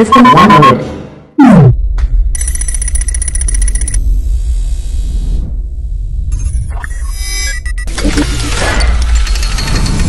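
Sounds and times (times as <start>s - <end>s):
high electronic beeps and ticks: 2.3s - 4.0s, 6.3s - 7.9s
deep steady rumble: 3.6s - 6.3s.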